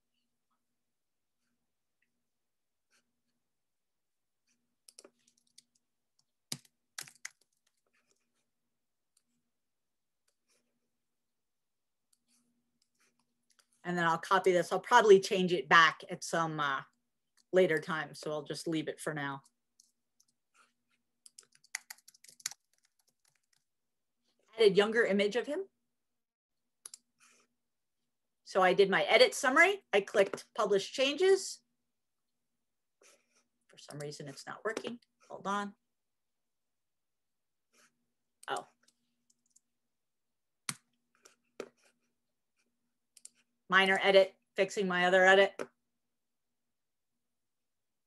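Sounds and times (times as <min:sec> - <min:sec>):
typing on computer keyboard: 0:04.8 - 0:08.0, 0:21.2 - 0:23.7.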